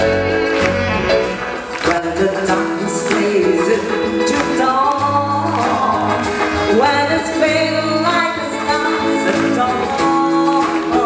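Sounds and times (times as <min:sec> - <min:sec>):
live pop band playing: 0:00.0 - 0:11.0.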